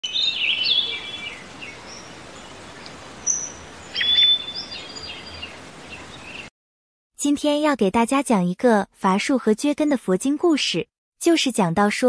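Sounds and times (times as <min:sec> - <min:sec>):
birds chirping and whistling: 0:00.0 - 0:02.5, 0:03.2 - 0:06.5.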